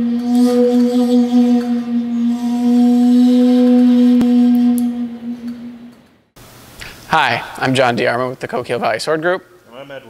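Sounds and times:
steady low ringing tone: 0.0 - 6.3.

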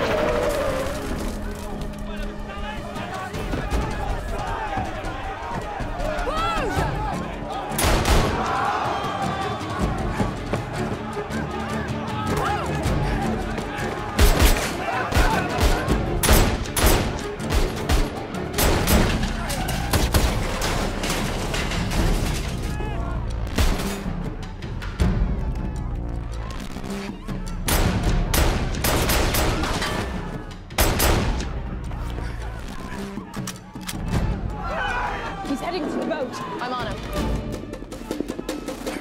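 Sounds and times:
film music score: 0.0 - 39.0.

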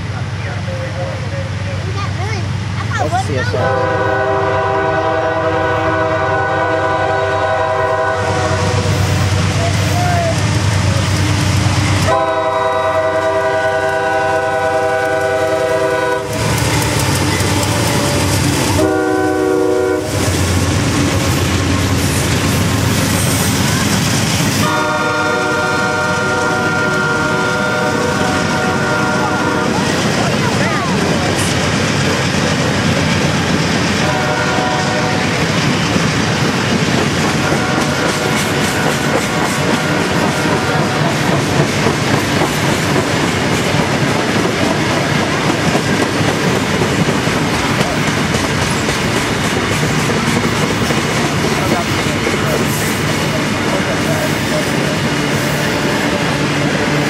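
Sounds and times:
freight train rumbling: 0.0 - 57.0
locomotive horn blasts: 3.5 - 9.1, 12.0 - 20.3, 24.6 - 29.8, 34.0 - 35.3, 37.4 - 41.2.

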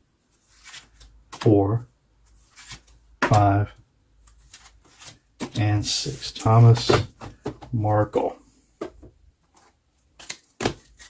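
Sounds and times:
cards handled on a tabletop: 0.3 - 1.5, 2.2 - 3.4, 4.2 - 7.7, 8.8 - 11.0.

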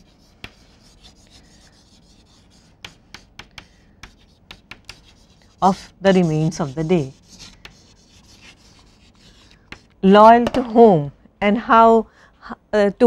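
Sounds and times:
chalk scratching on chalkboard: 0.0 - 10.0
chalk tapping on chalkboard: 0.0 - 10.6.

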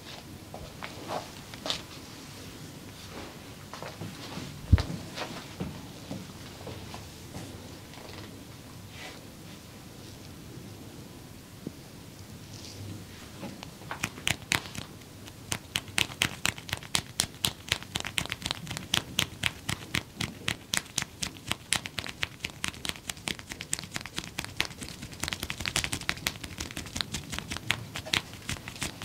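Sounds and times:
hands clicking during massage: 13.5 - 29.0.

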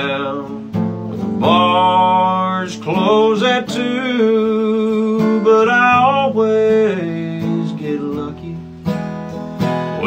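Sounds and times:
man singing country: 0.0 - 8.8
acoustic guitar strumming: 0.0 - 10.0.

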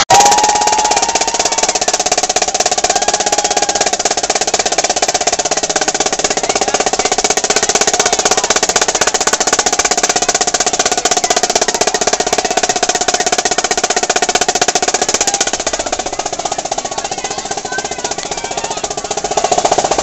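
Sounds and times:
marching drums rolling: 0.0 - 20.0.

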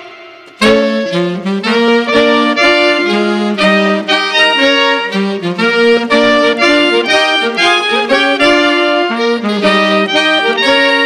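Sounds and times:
saxophone and clarinet swing ensemble: 0.0 - 11.0.

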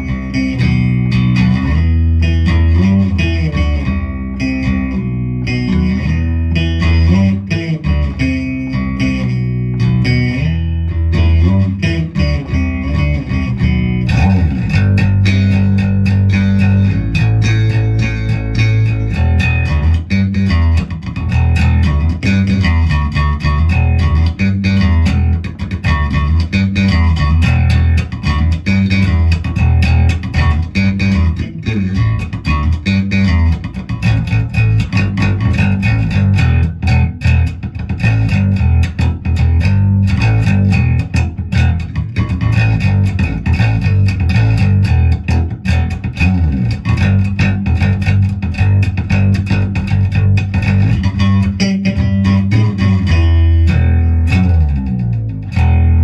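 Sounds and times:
electric bass plucked fingerstyle: 0.0 - 56.0.

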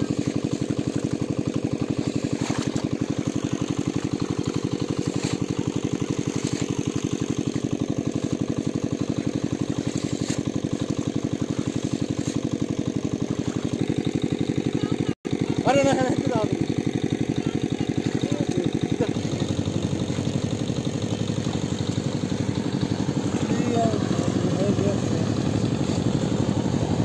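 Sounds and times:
small engine running: 0.0 - 27.0.

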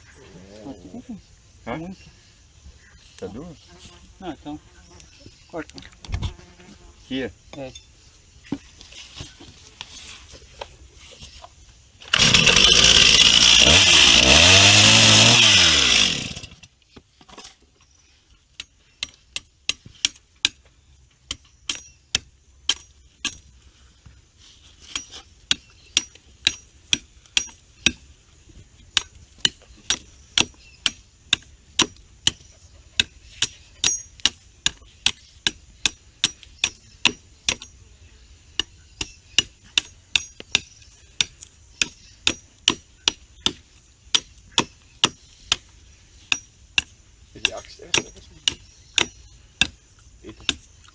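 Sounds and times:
chainsaw cutting: 12.0 - 16.7
machete chopping wood: 18.6 - 20.6, 21.3 - 23.4, 24.8 - 28.0, 28.9 - 37.7, 38.5 - 45.7, 46.3 - 49.8, 50.4 - 50.7.

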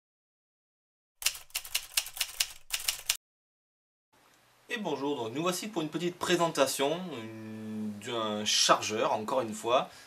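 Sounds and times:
typewriter key strikes: 1.2 - 3.2.

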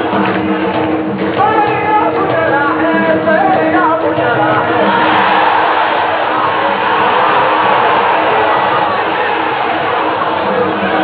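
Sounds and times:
football crowd chanting and singing: 0.0 - 11.0.

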